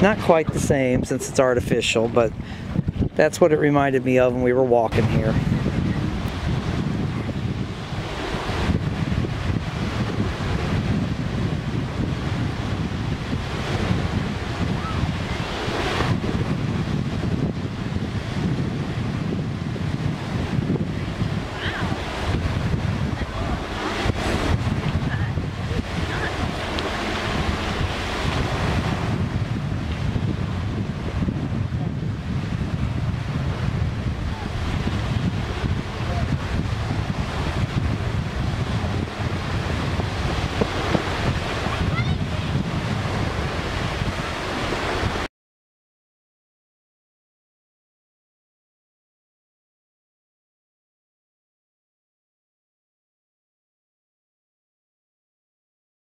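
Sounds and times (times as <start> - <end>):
wind buffeting microphone: 0.0 - 45.3
waves washing onto pebble beach: 20.2 - 31.1, 34.1 - 45.2.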